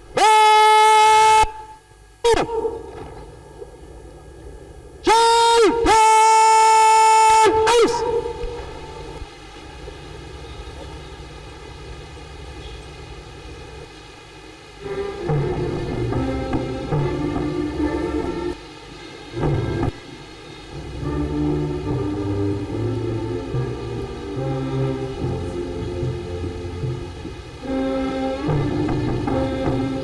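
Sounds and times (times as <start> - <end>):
low outdoor murmur: 0.0 - 30.0
man shouting commands: 0.2 - 1.6, 5.0 - 8.4.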